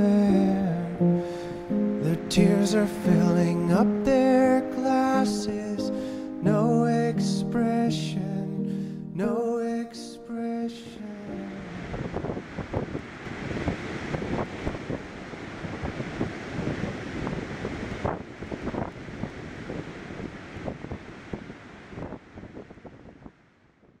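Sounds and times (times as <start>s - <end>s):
gusty wind buffeting microphone: 11.5s - 24.0s.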